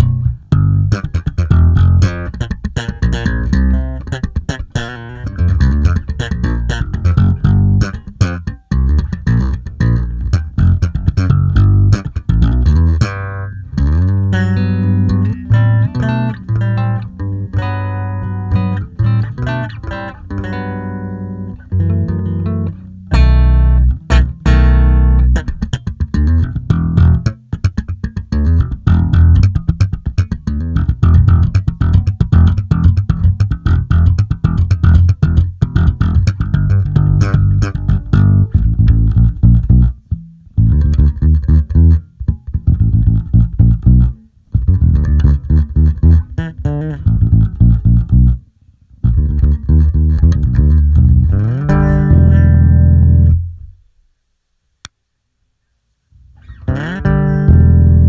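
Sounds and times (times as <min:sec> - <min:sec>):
electric bass plucked fingerstyle: 0:00.0 - 0:54.1, 0:56.1 - 0:58.0.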